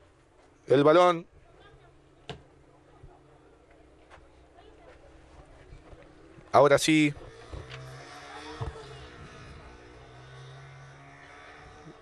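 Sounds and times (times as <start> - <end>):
distant players calling: 6.1 - 12.0.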